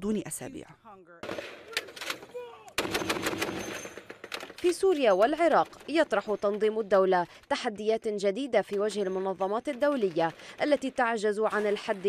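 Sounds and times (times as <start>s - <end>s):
heavy machine gun firing: 2.8s - 4.5s.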